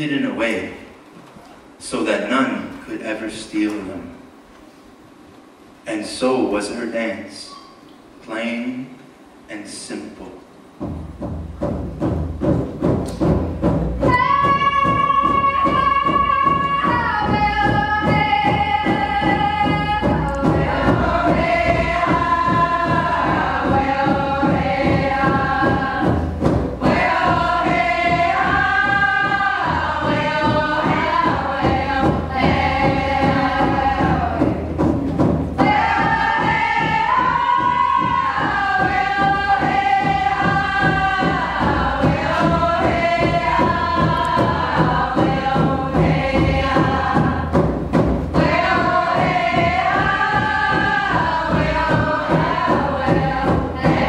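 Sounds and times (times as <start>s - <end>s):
hand drum beat: 10.7s - 54.0s
women singing together: 14.0s - 34.9s, 35.6s - 54.0s.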